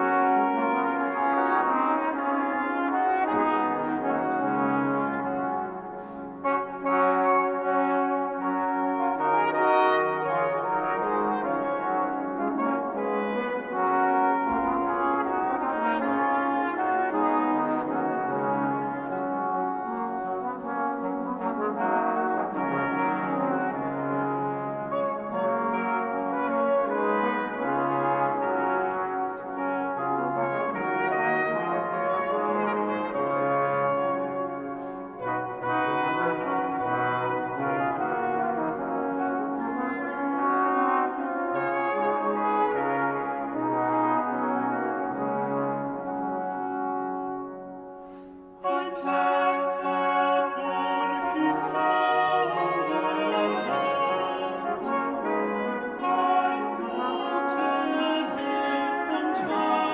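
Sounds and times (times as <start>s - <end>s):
brass ensemble playing: 0.0s - 59.9s.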